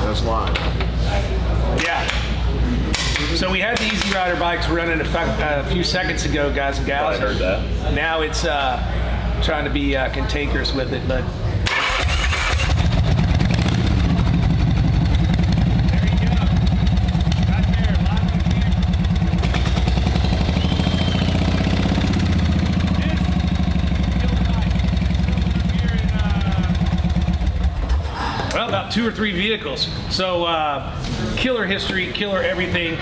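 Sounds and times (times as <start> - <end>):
motorcycle engine running: 11.8 - 28.1.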